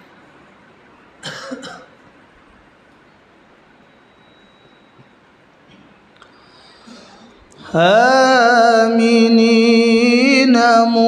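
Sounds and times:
person coughing: 1.2s - 2.0s, 6.8s - 7.4s.

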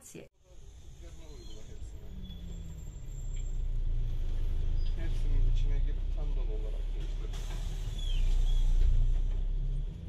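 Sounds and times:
bus engine rumble: 0.4s - 10.0s.

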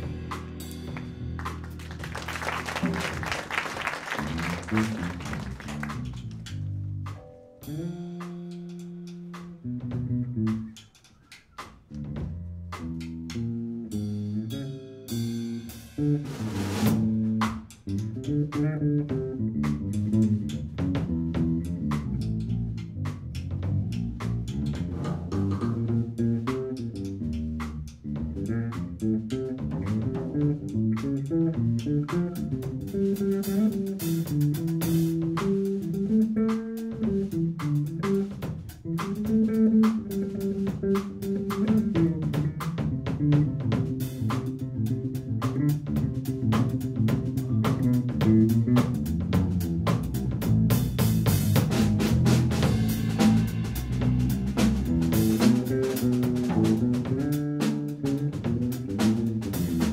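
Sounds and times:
electric bass guitar: 0.0s - 11.0s, 11.6s - 59.9s
drum kit: 0.0s - 59.9s.

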